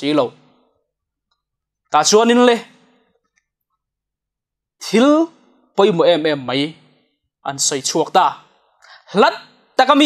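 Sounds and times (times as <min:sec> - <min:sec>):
man speaking: 0:00.0 - 0:00.5, 0:01.9 - 0:02.9, 0:04.8 - 0:10.0.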